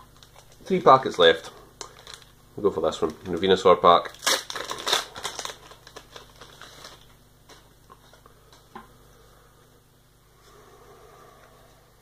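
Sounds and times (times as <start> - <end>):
foil wrapper tearing and crinkling: 1.8 - 2.3, 2.9 - 7.6.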